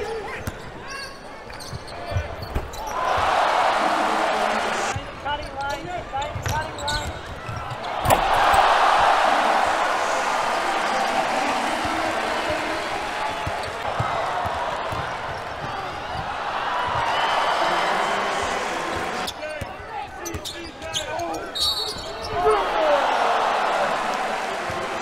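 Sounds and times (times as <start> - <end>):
sneakers squeaking on hardwood: 0.5 - 3.0, 5.0 - 8.0, 19.5 - 22.4
crowd cheering: 2.8 - 5.0, 7.4 - 20.0, 21.8 - 25.0
basketball bouncing: 13.4 - 16.3.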